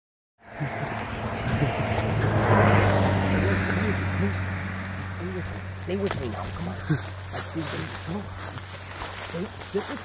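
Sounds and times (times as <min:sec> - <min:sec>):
grass and brush rustling: 0:00.5 - 0:10.0.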